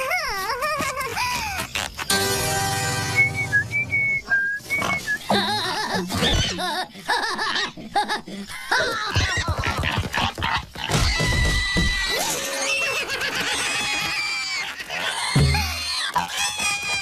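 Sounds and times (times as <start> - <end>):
short whistled notes: 2.1 - 5.3.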